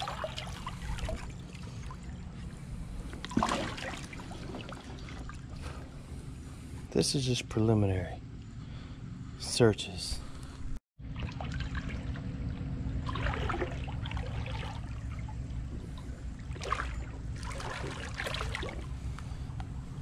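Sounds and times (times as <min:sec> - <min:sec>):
rushing water: 0:00.0 - 0:01.2.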